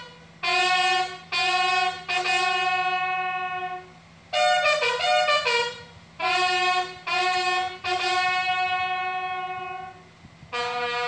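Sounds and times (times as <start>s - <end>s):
brass band playing slow piece: 0.0s - 11.0s.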